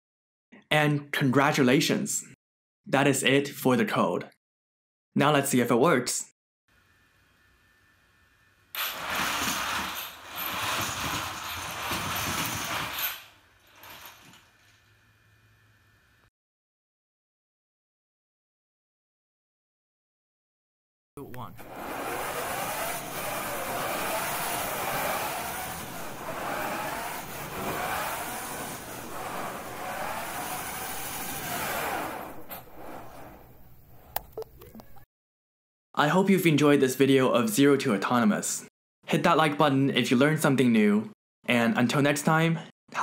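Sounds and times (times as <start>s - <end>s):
robot motors rough mechanical noise: 21.5s - 33.6s.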